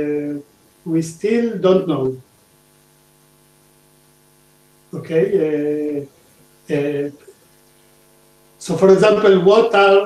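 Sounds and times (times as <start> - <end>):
low electrical hum: 0.0 - 10.0
person speaking: 5.0 - 7.4.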